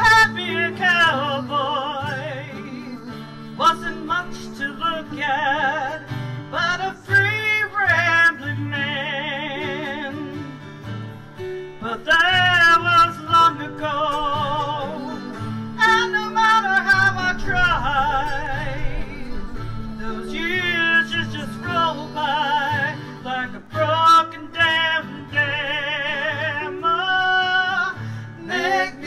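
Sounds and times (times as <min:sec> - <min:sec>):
woman singing with vibrato: 0:00.0 - 0:10.6, 0:11.8 - 0:29.0
acoustic guitar: 0:00.0 - 0:29.0
mandolin: 0:00.0 - 0:29.0.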